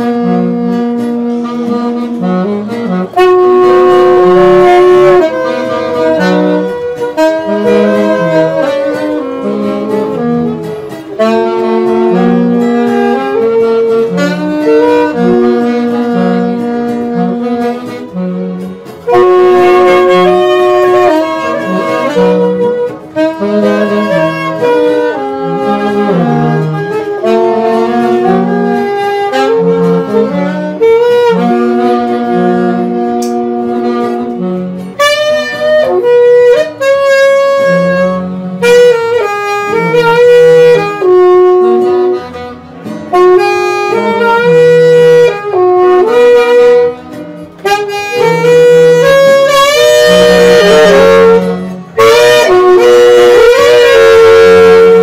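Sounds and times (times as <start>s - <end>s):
alto saxophones playing melody: 0.0s - 55.0s
electronic keyboard: 0.0s - 55.0s
guitar: 0.0s - 55.0s.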